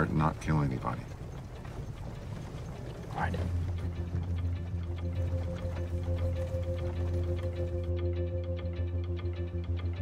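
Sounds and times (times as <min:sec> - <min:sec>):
horse-drawn carriage rumbling: 0:00.0 - 0:08.0.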